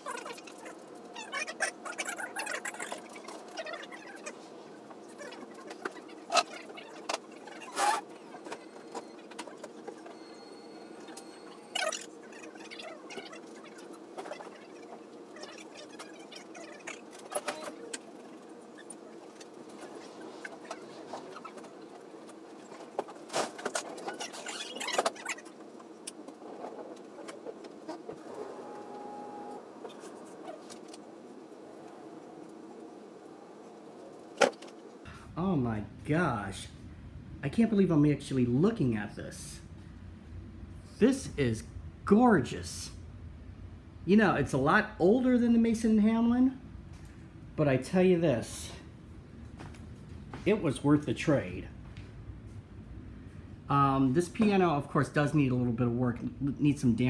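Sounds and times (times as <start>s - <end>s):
steady background hum: 0.0s - 57.0s.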